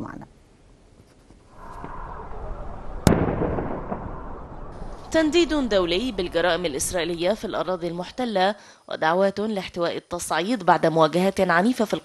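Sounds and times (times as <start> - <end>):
loud sharp bang: 1.6 - 8.3.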